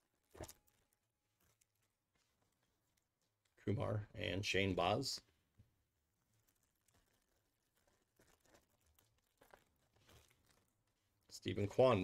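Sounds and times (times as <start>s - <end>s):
foil wrapper crinkling: 6.1s - 11.3s.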